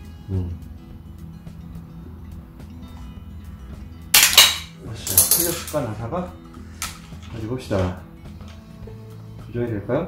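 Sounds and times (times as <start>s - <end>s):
locking pliers metallic clack: 4.2s - 5.8s.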